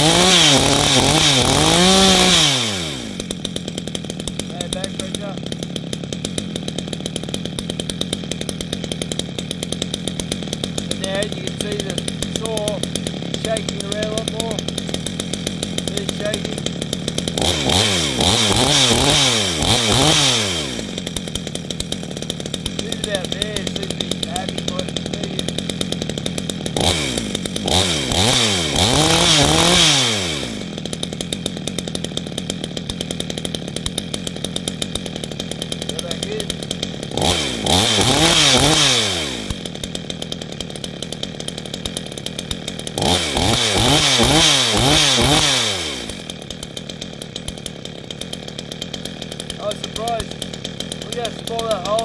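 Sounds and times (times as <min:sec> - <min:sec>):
chainsaw idling and revving: 0:00.0 - 0:52.0.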